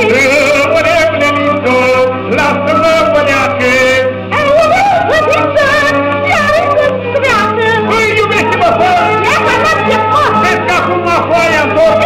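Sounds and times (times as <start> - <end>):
duet singing with vibrato: 0.0 - 12.0.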